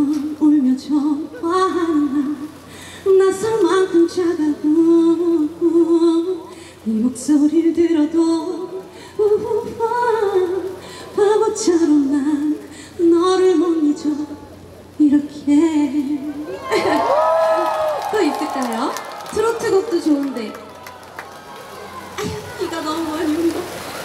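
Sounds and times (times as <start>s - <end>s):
woman singing into a microphone: 0.0s - 17.0s.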